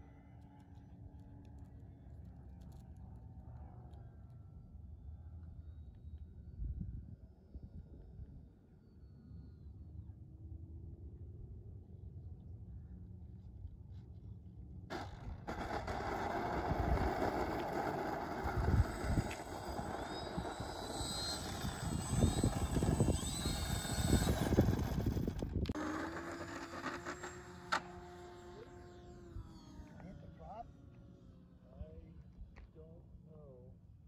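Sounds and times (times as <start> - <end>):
model plane motor whine: 14.9 - 32.1.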